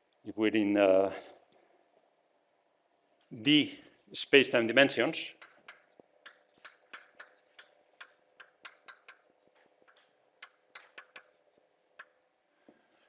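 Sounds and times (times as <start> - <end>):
chalk writing on blackboard: 5.3 - 12.3.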